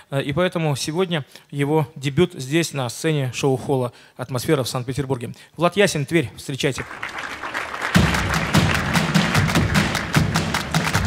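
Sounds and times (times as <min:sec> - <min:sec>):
audience applause: 0:06.8 - 0:11.0
drums: 0:07.7 - 0:11.0.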